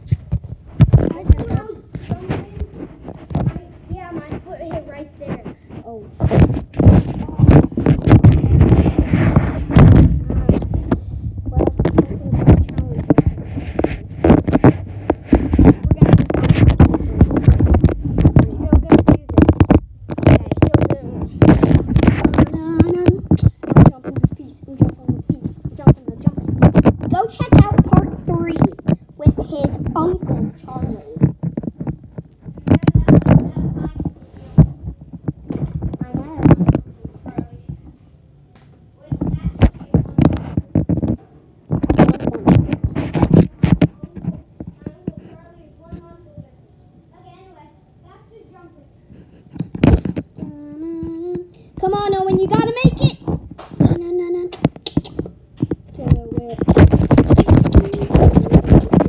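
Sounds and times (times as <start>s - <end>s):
microphone rubbing and knocking: 0.0s - 38.0s, 38.8s - 47.5s, 49.0s - 59.0s
muffled voices: 0.0s - 59.0s.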